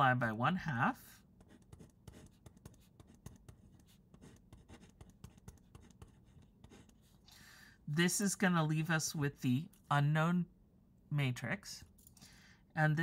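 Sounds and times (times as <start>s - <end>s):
pen scratching on paper: 1.4s - 7.2s.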